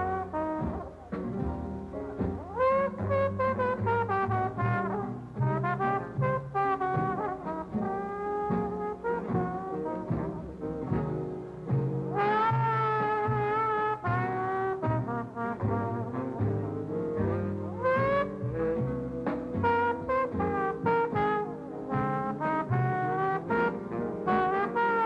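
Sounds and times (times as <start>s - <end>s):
jazz band accompanying: 0.0s - 25.0s
trombone solo: 0.0s - 25.0s.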